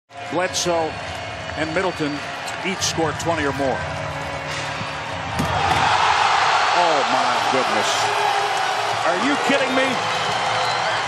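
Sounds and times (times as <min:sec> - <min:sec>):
crowd roaring: 0:00.4 - 0:11.0.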